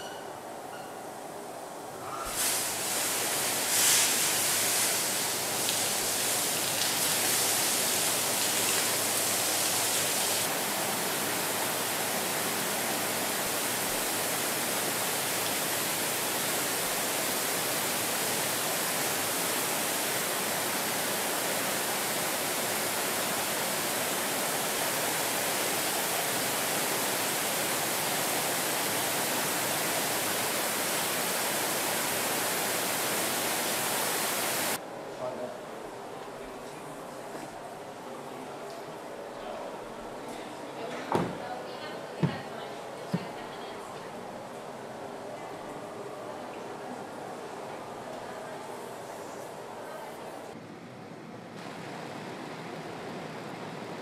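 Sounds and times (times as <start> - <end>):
hiss of water spray: 2.3 - 34.8.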